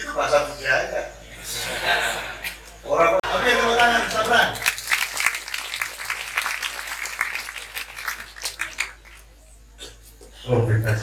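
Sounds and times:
audience clapping: 3.6s - 9.4s.

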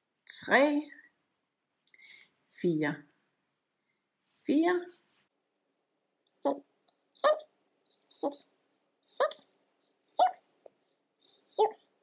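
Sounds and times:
woman counting aloud: 10.1s - 10.5s.

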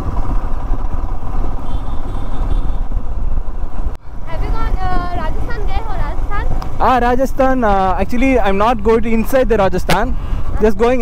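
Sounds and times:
motorcycle engine rumble: 0.0s - 11.0s
wind noise on microphone: 0.0s - 11.0s.

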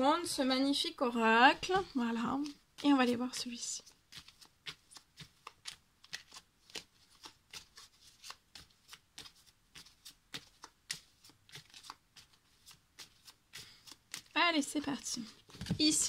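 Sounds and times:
cards being shuffled: 1.7s - 16.0s.

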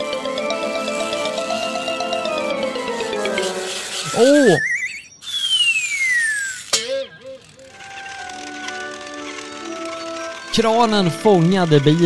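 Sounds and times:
suspenseful background music: 0.0s - 4.3s
falling slide-whistle tone: 0.0s - 8.5s.

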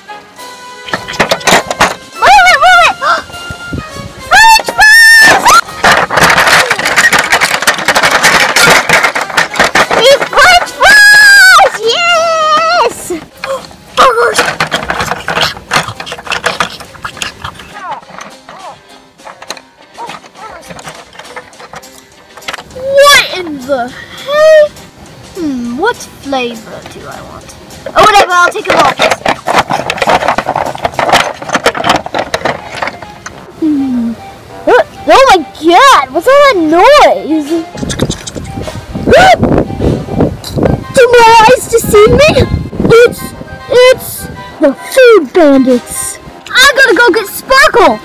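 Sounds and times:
background music: 0.0s - 48.0s
plastic toys clattering over: 0.9s - 2.1s, 4.6s - 11.9s, 13.2s - 22.8s, 27.8s - 33.4s.

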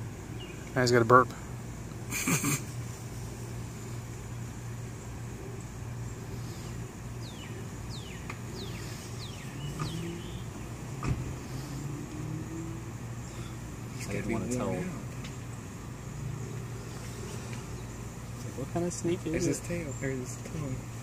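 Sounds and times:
steady low hum: 0.0s - 21.0s
faint motor tone rising in pitch: 7.4s - 13.5s.

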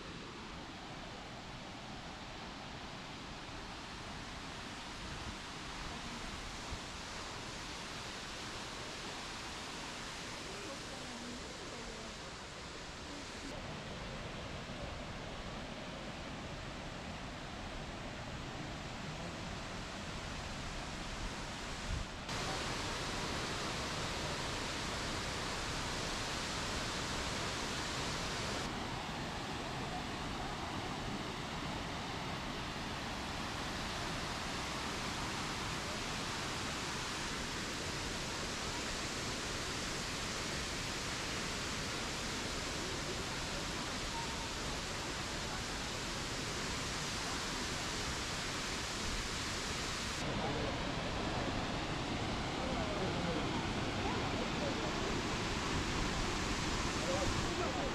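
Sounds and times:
waterfall rushing: 18.3s - 57.9s.

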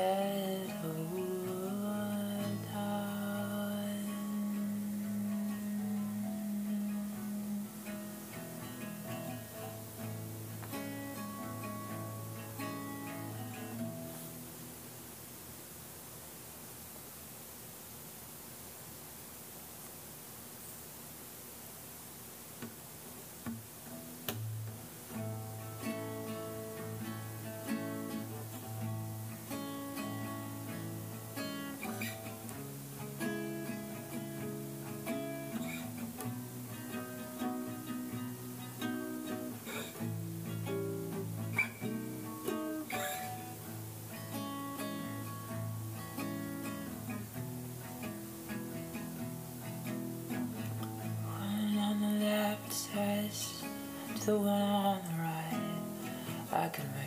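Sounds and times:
guitar playing picked notes: 0.0s - 14.8s, 23.9s - 57.0s.

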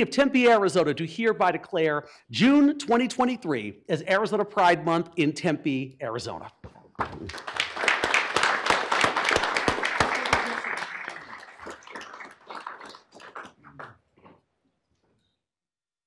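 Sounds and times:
crowd applauding: 7.0s - 14.0s.

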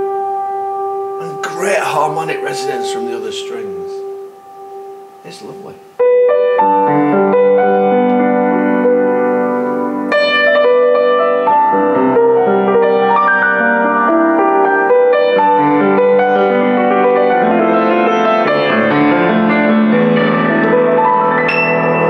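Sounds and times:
piano chords: 0.0s - 22.0s.

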